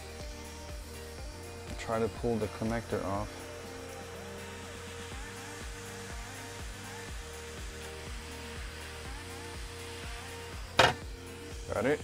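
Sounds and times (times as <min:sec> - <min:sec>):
background music with steady beat: 0:00.0 - 0:12.0
hot air rework station blowing: 0:00.0 - 0:12.0
short loud knock: 0:10.8 - 0:11.0.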